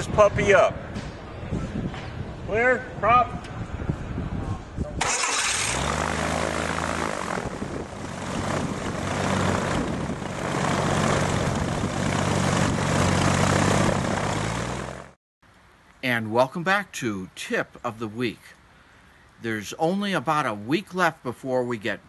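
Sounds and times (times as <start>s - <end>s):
car engine starting and running: 5.0s - 15.2s
propeller turning: 5.0s - 15.2s.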